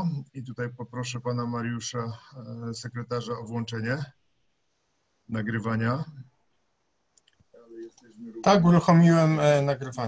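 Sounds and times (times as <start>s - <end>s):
computer mouse clicks: 7.1s - 8.1s.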